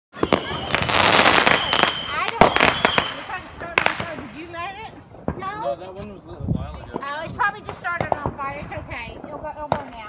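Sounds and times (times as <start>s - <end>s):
fireworks bangs: 0.1s - 10.0s
fireworks cracking: 0.1s - 10.0s.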